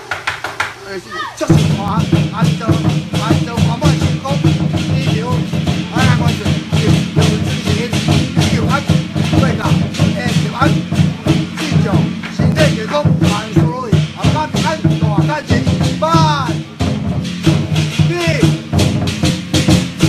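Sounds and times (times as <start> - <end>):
drums and gongs struck: 0.0 - 20.0.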